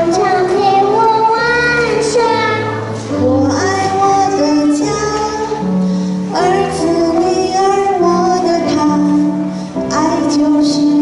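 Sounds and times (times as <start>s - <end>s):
woman singing: 0.0s - 5.7s, 6.3s - 11.0s
girl singing into a microphone: 0.0s - 11.0s
instrumental backing music: 0.0s - 11.0s.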